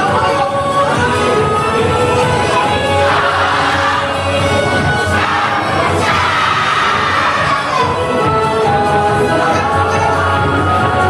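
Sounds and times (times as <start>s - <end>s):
loud dance music: 0.0s - 11.0s
dancers shouting in unison: 2.4s - 8.1s.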